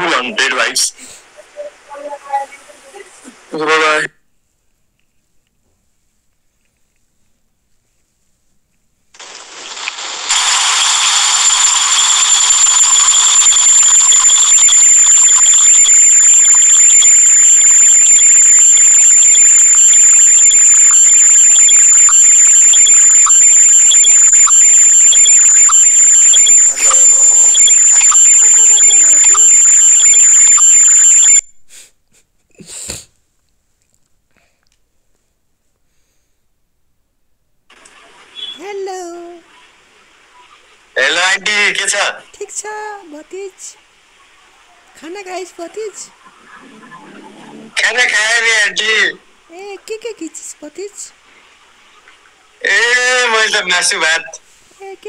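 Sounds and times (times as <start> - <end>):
loud hissing with shrill whistle: 9.2 - 31.4.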